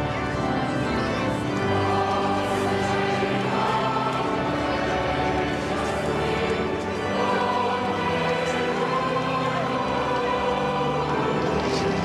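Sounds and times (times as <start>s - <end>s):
choral music with held chords: 0.0s - 12.0s.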